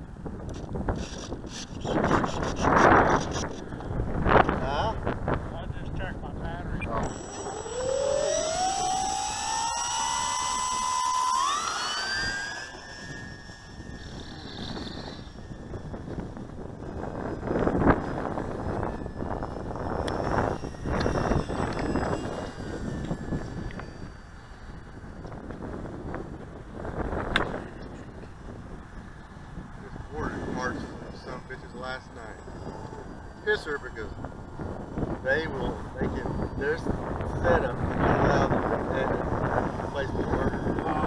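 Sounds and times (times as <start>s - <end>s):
model plane motor whine: 0.0s - 6.0s, 7.0s - 41.0s
wind gusts on microphone: 0.0s - 41.0s.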